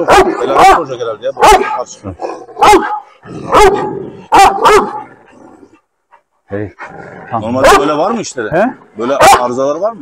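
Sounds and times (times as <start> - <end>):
large dog barking aggressively: 0.0 - 10.0.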